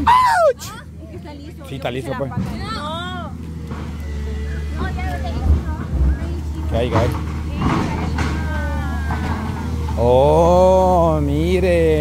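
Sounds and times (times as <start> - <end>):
people talking: 0.0 - 3.3, 4.2 - 12.0
diesel machinery idling: 0.0 - 12.0.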